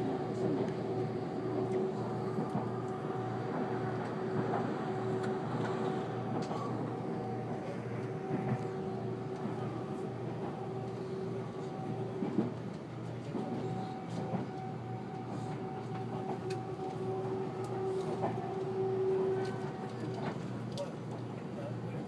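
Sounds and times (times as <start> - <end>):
train wheels rumbling on rail: 0.0 - 22.0.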